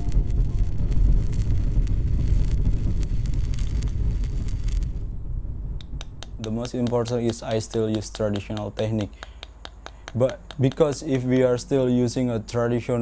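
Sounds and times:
gas torch flame blowing: 0.1 - 11.8.

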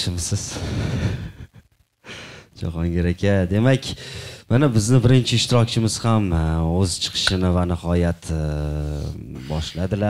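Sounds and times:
man speaking: 0.0 - 0.6, 2.6 - 10.0
person speaking: 2.6 - 10.0.

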